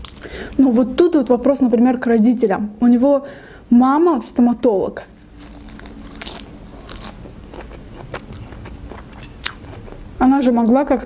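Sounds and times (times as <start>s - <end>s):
lettuce being chewed: 5.1s - 10.2s.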